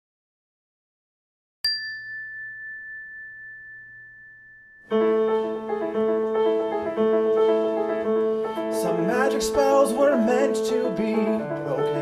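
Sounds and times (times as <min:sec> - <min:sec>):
high chime tone ringing: 0:01.7 - 0:06.1.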